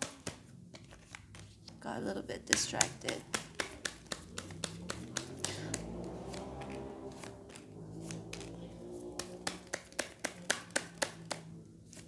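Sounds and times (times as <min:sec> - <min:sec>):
cards being shuffled: 0:00.0 - 0:01.8, 0:02.4 - 0:12.0.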